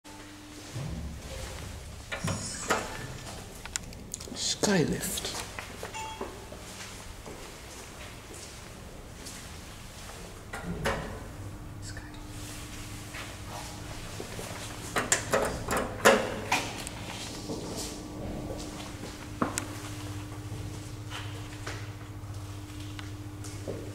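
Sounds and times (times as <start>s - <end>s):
low steady hum: 0.1s - 23.9s
elevator doors opening: 0.5s - 4.5s, 14.5s - 19.2s.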